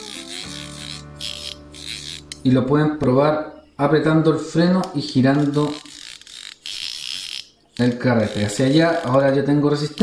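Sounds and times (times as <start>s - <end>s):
hands rubbing on fly reel: 0.0s - 2.3s.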